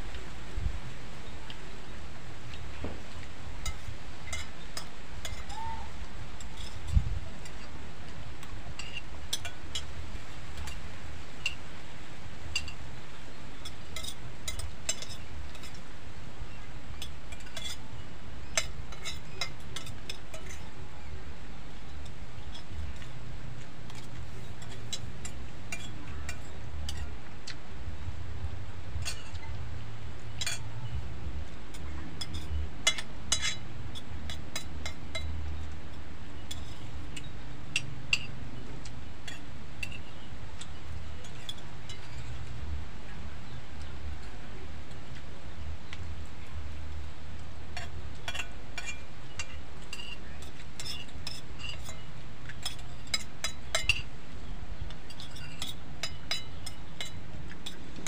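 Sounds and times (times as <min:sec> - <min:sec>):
spoons clinking on plates: 0:03.2 - 0:05.7, 0:06.4 - 0:11.6, 0:12.5 - 0:12.9, 0:13.5 - 0:15.9, 0:16.5 - 0:20.8, 0:21.7 - 0:27.6, 0:29.0 - 0:29.6, 0:30.2 - 0:35.8, 0:36.4 - 0:38.4, 0:39.2 - 0:42.6, 0:47.7 - 0:54.1, 0:54.9 - 0:58.0.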